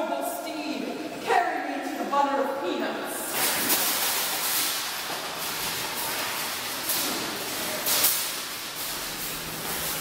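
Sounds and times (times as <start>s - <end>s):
shopping cart rolling and rattling: 3.3s - 10.0s.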